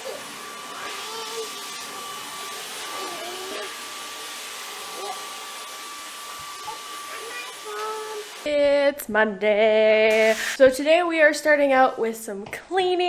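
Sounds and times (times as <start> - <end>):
vacuum cleaner running: 0.0 - 8.6, 10.1 - 10.6.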